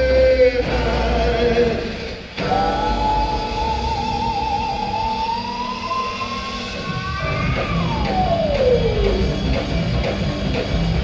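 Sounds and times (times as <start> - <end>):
rock band playing: 0.0 - 11.0
held high note sliding down: 2.4 - 9.3.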